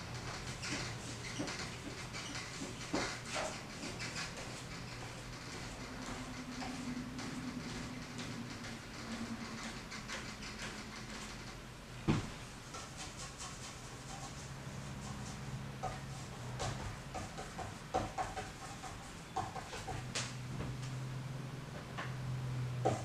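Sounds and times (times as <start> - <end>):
paintbrush scratching on canvas: 12.6 - 19.9.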